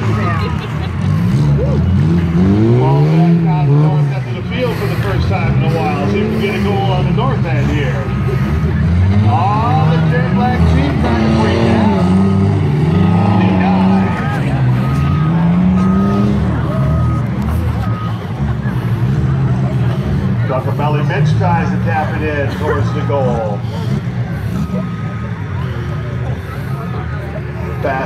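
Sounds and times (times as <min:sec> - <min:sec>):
car engines revving: 0:00.0 - 0:28.0
short beeps: 0:12.9 - 0:18.2.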